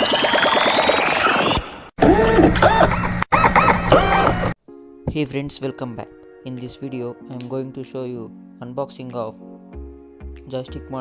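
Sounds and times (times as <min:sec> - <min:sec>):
warbling synthesized tones: 0:00.0 - 0:04.5.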